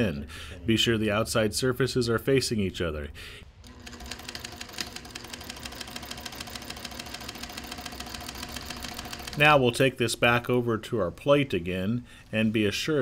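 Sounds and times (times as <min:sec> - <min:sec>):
sewing machine stitching: 0:03.6 - 0:09.4.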